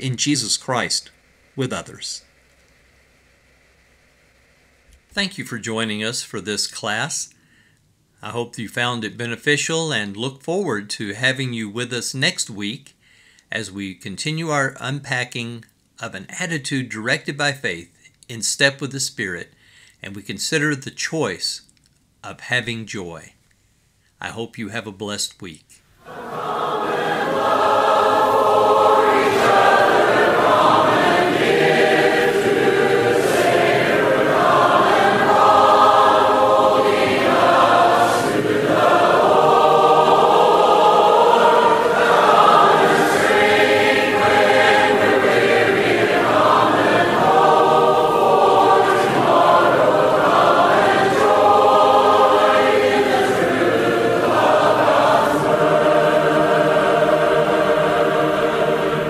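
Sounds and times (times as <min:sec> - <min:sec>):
choir singing: 0:26.0 - 0:59.0.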